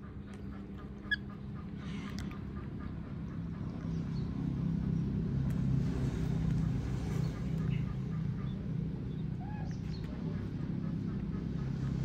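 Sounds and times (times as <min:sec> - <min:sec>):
low motor-like rumble: 0:00.0 - 0:12.0.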